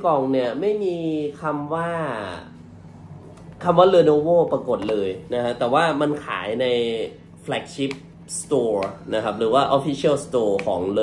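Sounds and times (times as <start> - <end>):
man speaking: 0.0 - 2.6, 3.6 - 11.0.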